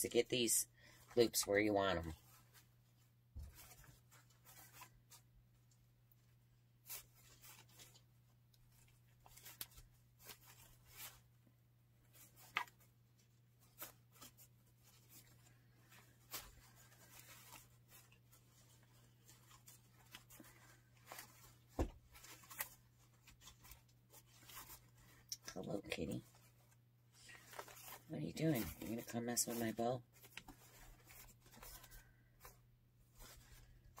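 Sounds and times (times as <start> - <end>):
ribbon rustling and crinkling: 0.4 - 34.0.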